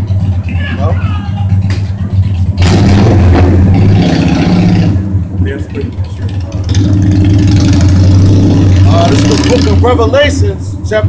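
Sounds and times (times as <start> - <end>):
engine running low: 0.0 - 11.0.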